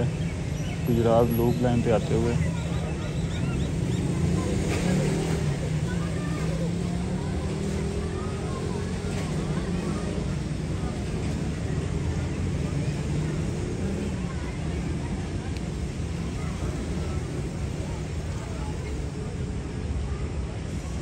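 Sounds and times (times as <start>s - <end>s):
diesel locomotive engine drone: 0.0s - 21.0s
voices: 0.0s - 21.0s.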